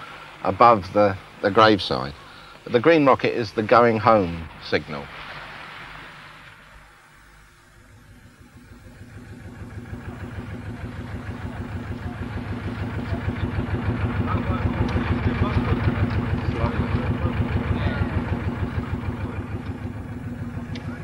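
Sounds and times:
boat engine throbbing: 0.0s - 21.0s.

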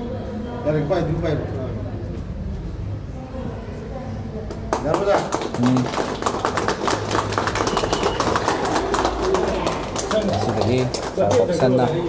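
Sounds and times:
people talking: 3.2s - 6.0s, 8.4s - 12.0s
crowd applauding: 4.7s - 12.0s.

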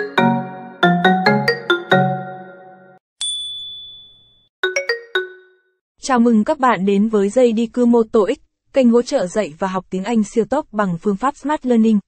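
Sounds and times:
chime-like logo jingle: 1.3s - 5.7s.

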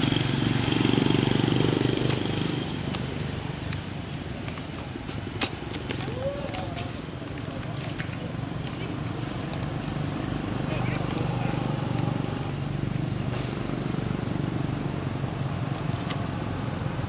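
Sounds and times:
motorbikes passing: 0.0s - 17.0s.

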